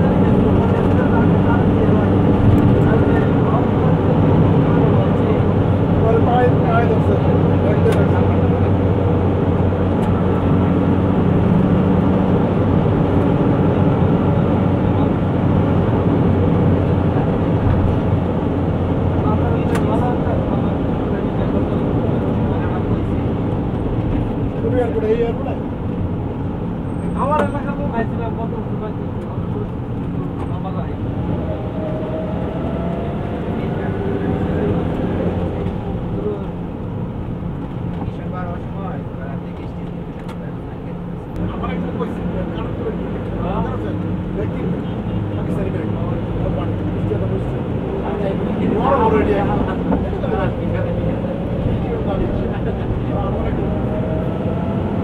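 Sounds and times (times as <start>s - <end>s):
vehicle engine drone and road noise: 0.0s - 55.0s.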